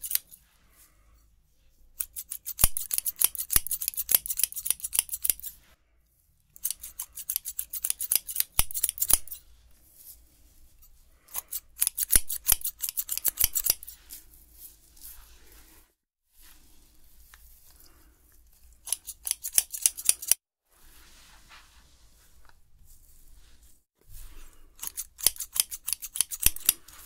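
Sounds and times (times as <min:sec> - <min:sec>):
scissors snipping: 0:00.0 - 0:00.4, 0:02.0 - 0:05.5, 0:06.6 - 0:09.4, 0:11.3 - 0:14.0, 0:18.8 - 0:20.4, 0:24.8 - 0:27.0.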